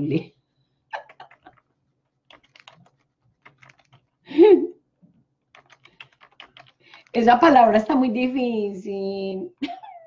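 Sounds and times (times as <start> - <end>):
computer keyboard typing: 1.0 - 4.2, 5.5 - 7.6.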